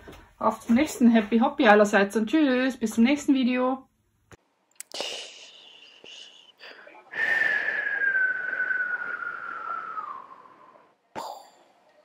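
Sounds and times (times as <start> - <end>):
breathy whistle gliding down: 7.2 - 10.9.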